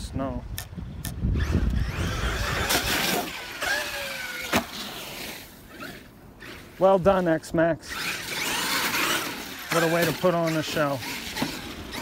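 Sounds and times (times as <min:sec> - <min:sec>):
tyres on dirt: 0:00.5 - 0:12.0
electric rc truck motor whine: 0:01.2 - 0:06.8, 0:07.8 - 0:12.0.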